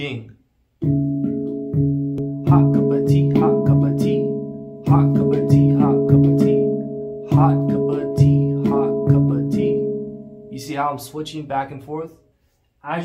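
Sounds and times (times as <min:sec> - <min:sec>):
handpan notes ringing: 0:00.8 - 0:10.9.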